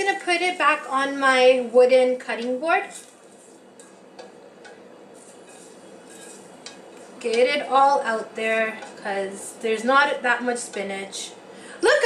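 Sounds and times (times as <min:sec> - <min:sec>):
spatula scraping metal pot: 0:02.8 - 0:07.6.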